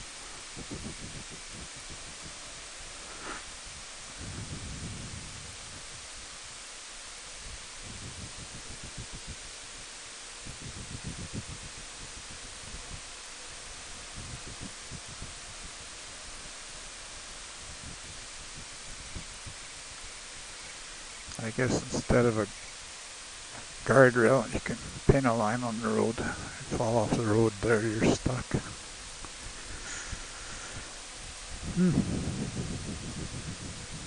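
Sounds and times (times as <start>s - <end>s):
low wind buffeting gusts: 0.0s - 34.0s
wind rushing over microphone: 0.0s - 34.0s.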